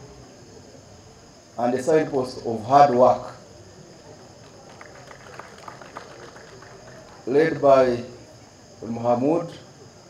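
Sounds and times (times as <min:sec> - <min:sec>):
low crowd murmur: 0:00.0 - 0:10.0.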